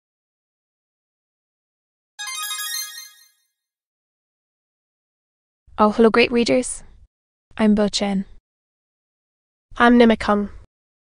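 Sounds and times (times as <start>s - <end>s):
bright musical chime: 2.2s - 3.4s.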